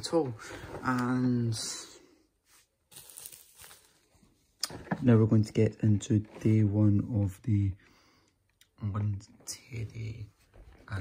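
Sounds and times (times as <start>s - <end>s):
plastic wrapping crinkling: 2.9s - 4.2s.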